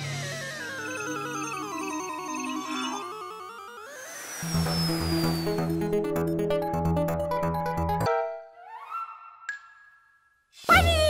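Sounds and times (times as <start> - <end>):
wobbling electronic sci-fi tone: 0.0 - 7.1
falling whistle: 2.5 - 6.4.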